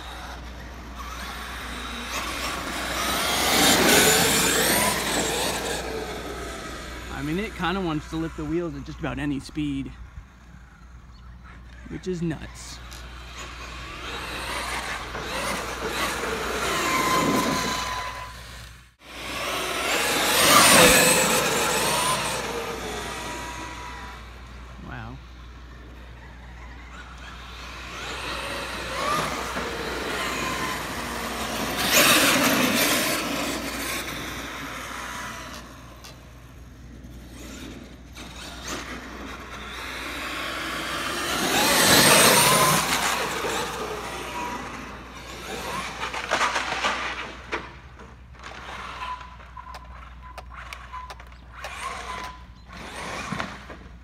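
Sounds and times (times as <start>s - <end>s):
tyre noise on asphalt: 0.0s - 8.0s, 12.8s - 54.0s
toy truck motor whine: 0.0s - 8.5s, 12.8s - 46.8s, 48.4s - 53.8s.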